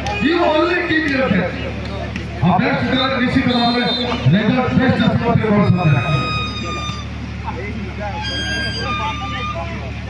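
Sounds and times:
crowd voices: 0.0 - 10.0
steady low hum: 0.3 - 10.0.

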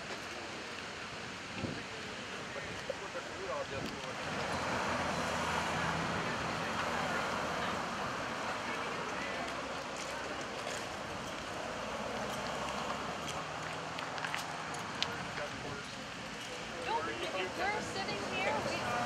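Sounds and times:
traffic: 0.0 - 19.0.

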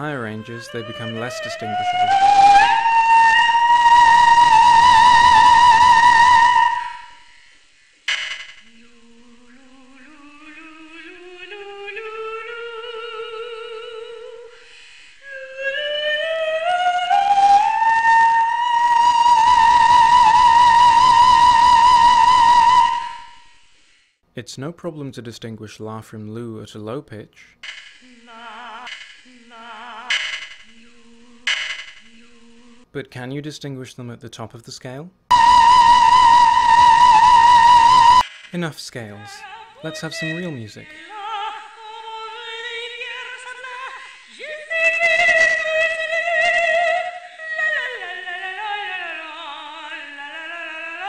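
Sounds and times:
operatic soprano singing high note: 0.0 - 7.6, 8.6 - 23.5, 28.0 - 32.8, 35.3 - 38.2, 38.9 - 51.0
scanner buzzing: 5.2 - 11.4, 27.6 - 32.8
woman singing low notes: 8.6 - 14.6, 15.2 - 23.1, 28.0 - 32.9.

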